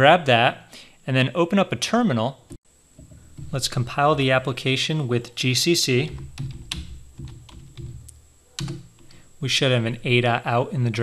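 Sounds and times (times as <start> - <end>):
keyboard key clicks: 6.1 - 9.1.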